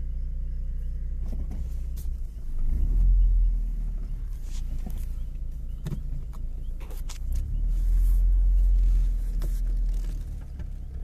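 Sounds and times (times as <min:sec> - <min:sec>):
car engine rumble inside cabin: 0:00.0 - 0:11.0.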